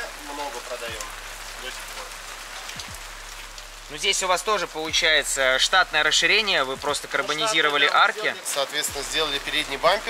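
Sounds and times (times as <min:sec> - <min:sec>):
light rain pattering: 0:00.0 - 0:10.0.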